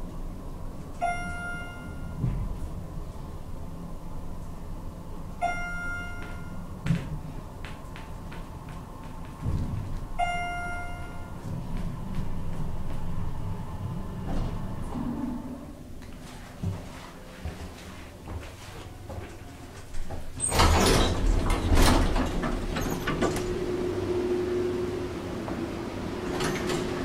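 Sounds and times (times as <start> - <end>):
elevator car rumbling: 0.0 - 16.8, 18.8 - 27.0
electronic chime dinging: 1.0 - 2.2, 5.4 - 6.7, 10.2 - 11.4.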